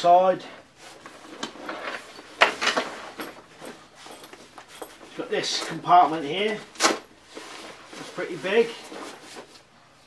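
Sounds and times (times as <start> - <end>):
fabric rustling: 0.7 - 9.8.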